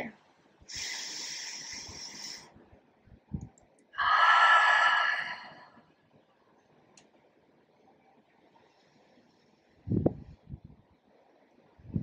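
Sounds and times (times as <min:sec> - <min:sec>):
person sighing: 0:04.0 - 0:05.6.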